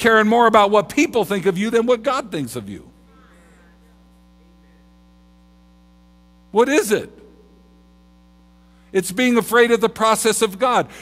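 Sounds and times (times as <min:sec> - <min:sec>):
man speaking: 0:00.0 - 0:03.0, 0:06.5 - 0:07.4, 0:08.9 - 0:11.0
electrical mains hum: 0:00.0 - 0:11.0.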